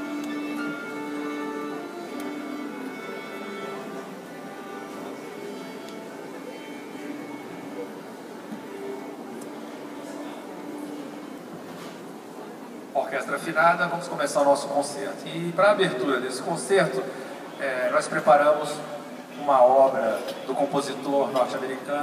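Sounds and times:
orchestra tuning up: 0:00.0 - 0:22.0.

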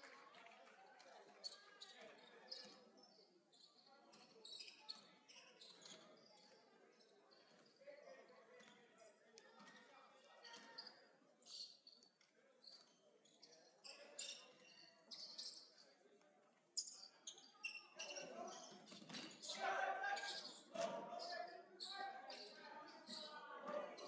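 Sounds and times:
shoe squeaks: 0:03.5 - 0:07.8, 0:10.5 - 0:15.8, 0:16.8 - 0:19.5.

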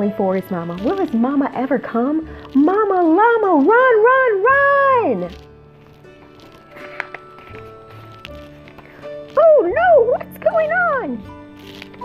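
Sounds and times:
soft background music: 0:00.0 - 0:12.0
page turning clicks: 0:06.3 - 0:09.0.

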